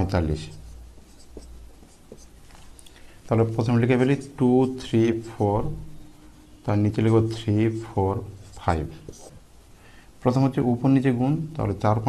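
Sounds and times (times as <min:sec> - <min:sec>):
marker writing on a board: 0:00.0 - 0:02.4, 0:03.4 - 0:09.4.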